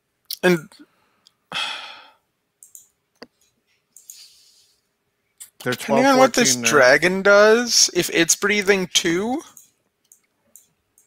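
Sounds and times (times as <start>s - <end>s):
person sighing: 1.5s - 2.2s
faint clicks: 2.6s - 4.4s, 9.5s - 11.0s.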